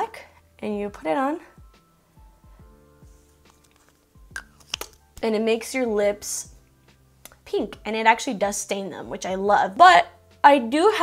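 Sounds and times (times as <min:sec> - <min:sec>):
soft music with low beat: 0:00.0 - 0:11.0
lip smacks: 0:03.4 - 0:05.1.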